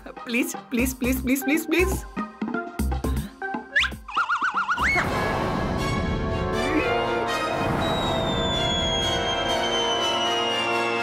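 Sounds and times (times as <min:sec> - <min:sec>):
light background music with beat: 0:00.0 - 0:04.5
cartoon upward whistle: 0:03.7 - 0:05.1, 0:07.5 - 0:11.0.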